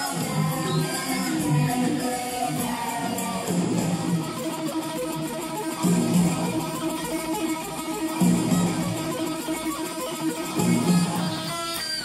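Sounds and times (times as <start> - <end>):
electric guitar lead: 0.0 - 12.0.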